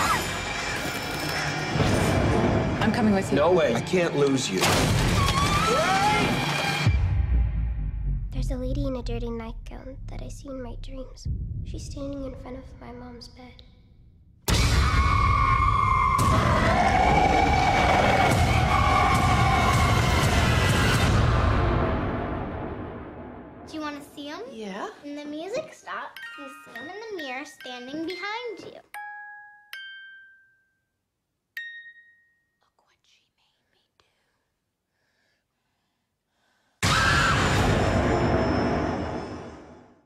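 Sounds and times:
breathy whispering: 0:32.6 - 0:34.6.

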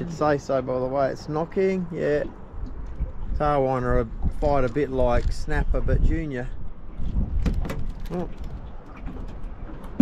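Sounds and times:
wind rumble on microphone: 0:02.1 - 0:10.0.

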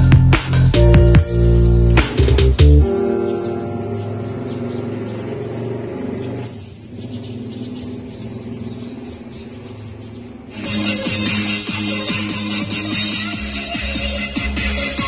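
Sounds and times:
music with a beat: 0:00.0 - 0:03.2, 0:10.5 - 0:15.0
music with held low notes: 0:00.0 - 0:06.5.

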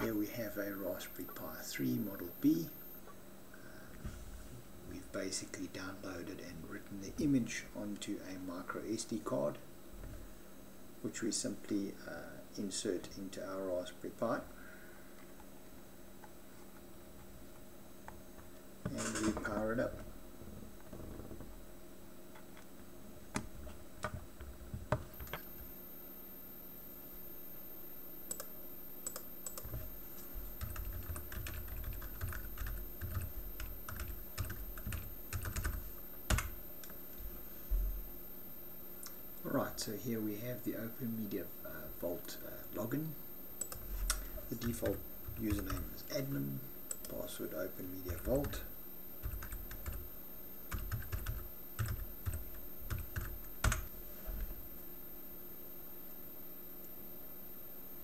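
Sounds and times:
computer keyboard typing: 0:28.3 - 0:29.9, 0:30.6 - 0:36.6, 0:43.6 - 0:46.0, 0:46.9 - 0:47.2, 0:48.1 - 0:48.6, 0:49.2 - 0:50.0, 0:50.7 - 0:54.5.

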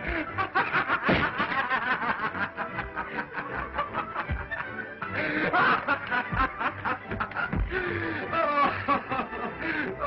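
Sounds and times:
laughter: 0:00.0 - 0:10.0.

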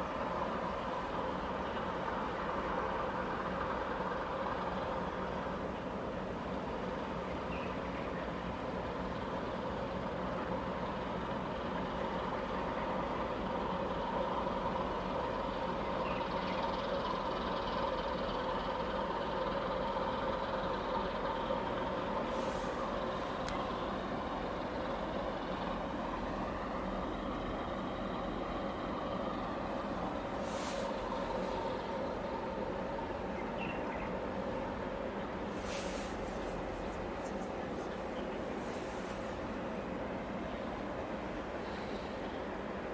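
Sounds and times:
diesel engine drone: 0:00.0 - 0:42.9
short hisses: 0:22.3 - 0:22.9, 0:30.4 - 0:31.0, 0:35.5 - 0:36.6.

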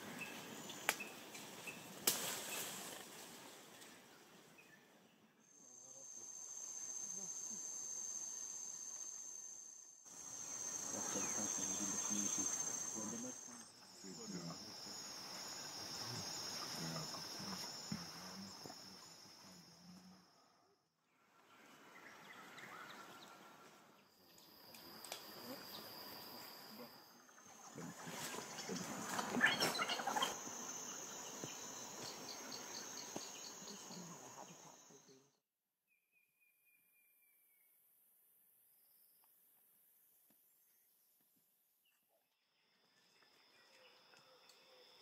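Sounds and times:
rustle: 0:00.0 - 0:09.5, 0:21.2 - 0:35.1
shrill trilling of forest insects: 0:00.0 - 0:20.8, 0:21.6 - 0:35.4, 0:42.4 - 0:45.0.

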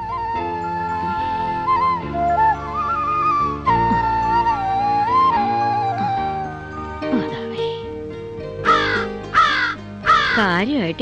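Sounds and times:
soft background music: 0:00.0 - 0:11.0
crow cawing: 0:08.6 - 0:10.5.

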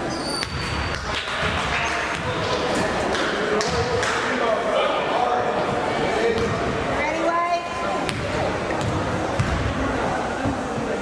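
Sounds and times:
murmur of spectators: 0:00.0 - 0:11.0
basketball thudding: 0:06.3 - 0:06.7, 0:08.0 - 0:09.8.

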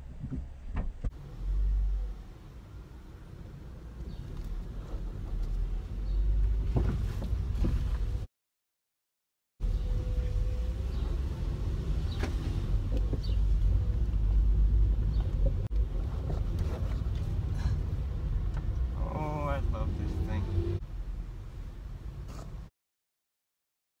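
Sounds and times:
car engine and road rumble: 0:00.0 - 0:08.3, 0:09.6 - 0:22.7.

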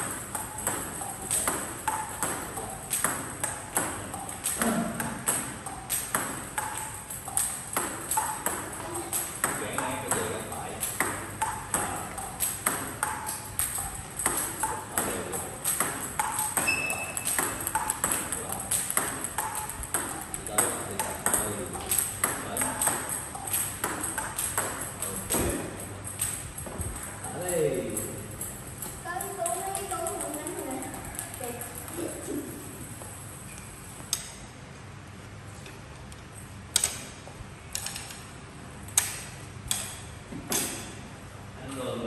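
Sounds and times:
table tennis balls clicking: 0:00.0 - 0:34.5.

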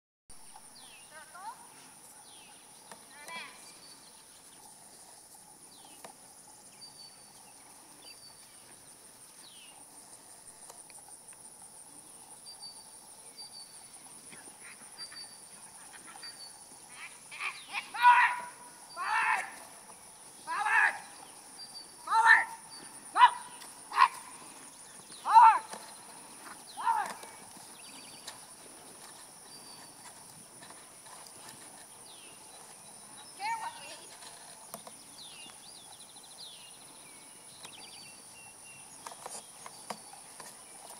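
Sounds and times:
bird calls: 0:12.0 - 0:40.9
small dog barking: 0:22.2 - 0:24.2.

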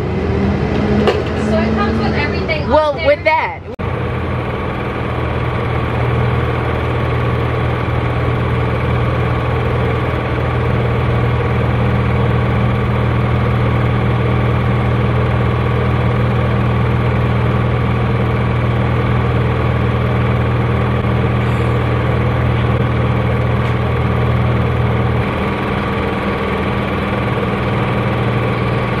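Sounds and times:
engine idling: 0:00.0 - 0:29.0.

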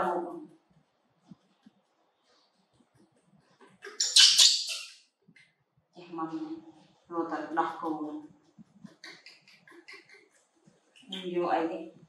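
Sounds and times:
baby monkey harsh cry: 0:03.8 - 0:04.9.

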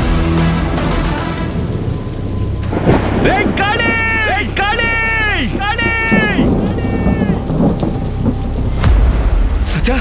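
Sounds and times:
dramatic background music: 0:00.0 - 0:10.0
heavy rain pouring: 0:00.0 - 0:10.0
thunder rumble: 0:01.4 - 0:10.0
low boom: 0:06.4 - 0:10.0.

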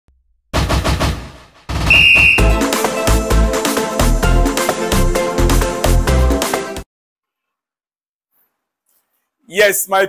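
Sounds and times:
short high whistle note: 0:01.9 - 0:02.6.

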